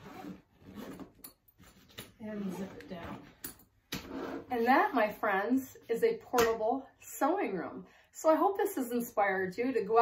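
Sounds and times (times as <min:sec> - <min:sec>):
zipper being drawn closed: 0:00.0 - 0:03.0, 0:04.0 - 0:04.6.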